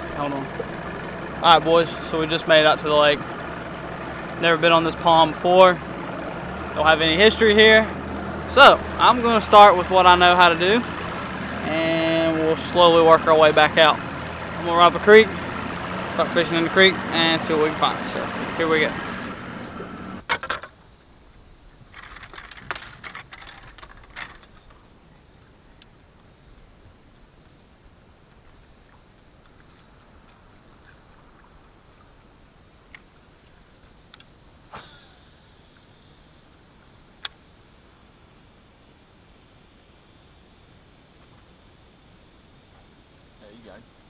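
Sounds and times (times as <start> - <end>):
quiet steady hiss: 0.0 - 44.0
sharp clicks: 22.0 - 24.7.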